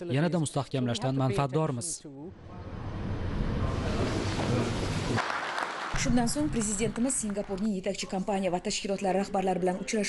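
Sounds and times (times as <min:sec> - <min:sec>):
people clapping: 0:04.2 - 0:08.2.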